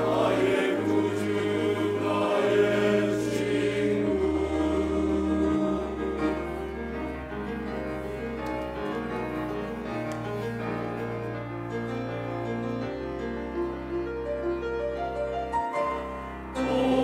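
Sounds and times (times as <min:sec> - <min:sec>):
grand piano playing: 0:00.0 - 0:17.0.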